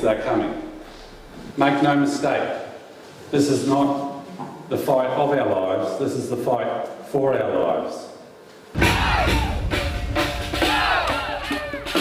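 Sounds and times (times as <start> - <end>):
crowd shouting together: 8.8 - 9.7, 10.5 - 12.0
music with heavy drum beat: 8.8 - 12.0.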